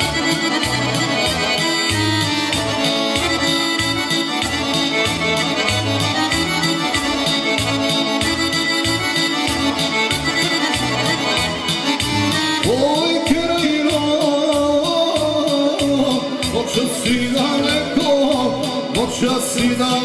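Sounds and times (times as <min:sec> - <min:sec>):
accordion-voiced keyboard melody: 0:00.0 - 0:20.0
bass and drum beat: 0:00.0 - 0:20.0.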